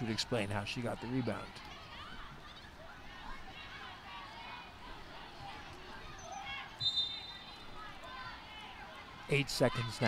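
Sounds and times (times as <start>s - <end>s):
indistinct voices in arena: 0.0s - 10.0s
short high whistle: 6.8s - 7.5s.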